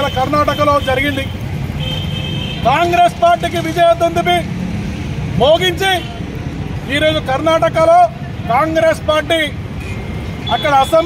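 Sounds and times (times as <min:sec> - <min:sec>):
man speaking loudly: 0:00.0 - 0:01.4, 0:02.6 - 0:04.6, 0:05.3 - 0:09.6, 0:10.4 - 0:11.0
low rumble of street noise: 0:00.0 - 0:11.0.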